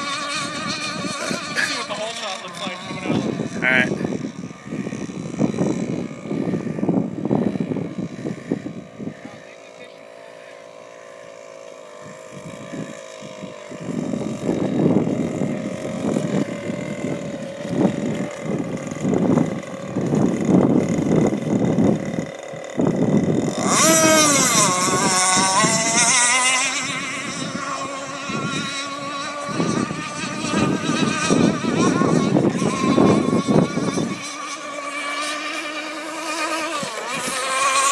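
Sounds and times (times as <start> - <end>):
speedboat engine whine: 0.0 - 37.9
wind buffeting microphone: 0.0 - 37.9.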